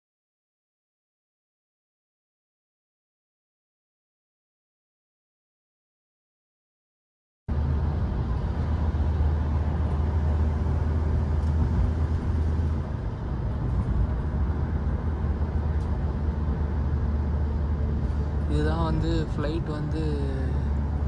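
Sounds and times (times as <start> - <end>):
vehicle engine and tyre drone: 7.5 - 21.0.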